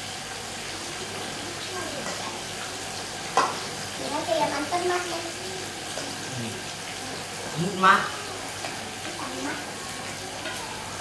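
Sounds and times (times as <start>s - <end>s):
oil sizzling in a wok: 0.0s - 11.0s.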